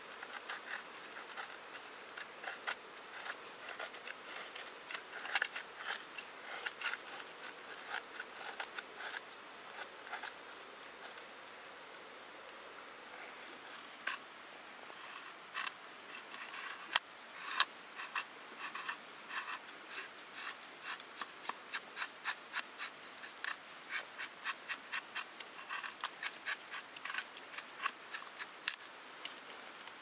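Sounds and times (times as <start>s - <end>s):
knife scraping wooden stick: 0.1s - 28.9s.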